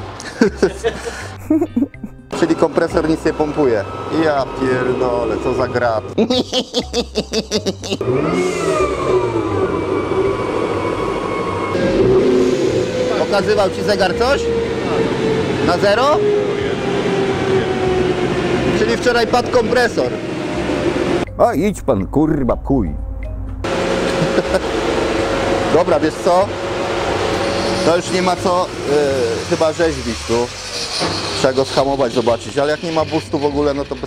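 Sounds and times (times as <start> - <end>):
car engine revving: 8.0 - 21.3, 23.6 - 33.0.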